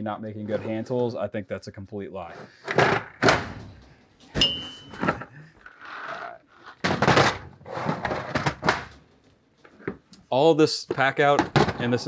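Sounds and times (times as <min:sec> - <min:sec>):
short metallic clink: 0:04.4 - 0:05.0
plastic cases knocking: 0:11.0 - 0:12.0.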